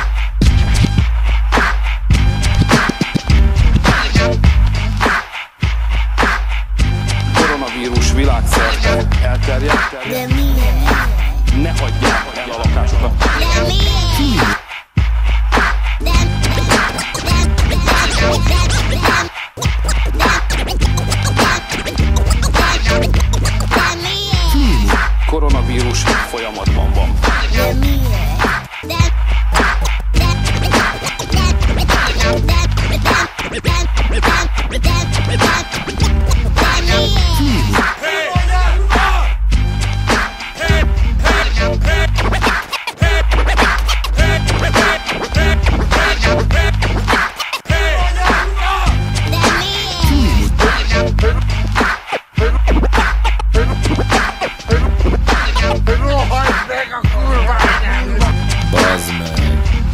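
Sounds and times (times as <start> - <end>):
vinyl record scratching: 0.0 - 14.6, 15.2 - 39.2, 39.8 - 59.9
hip-hop beat: 0.0 - 59.9.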